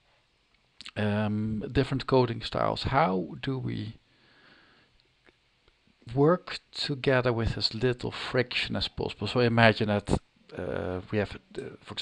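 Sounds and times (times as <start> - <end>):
faint in-breath through nose: 4.1 - 5.0.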